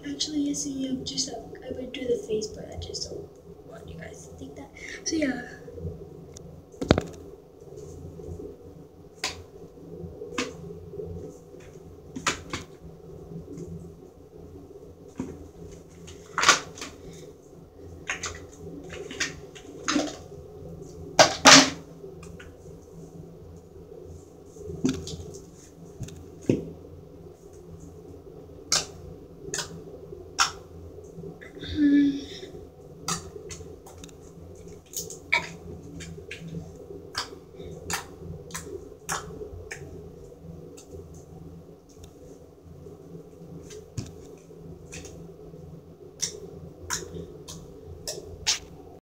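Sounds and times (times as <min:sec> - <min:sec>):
faint steady low hum: 0:00.0 - 0:49.0.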